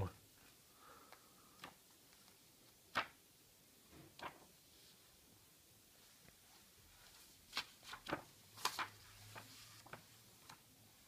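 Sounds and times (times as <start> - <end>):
book pages turning: 6.3 - 11.0.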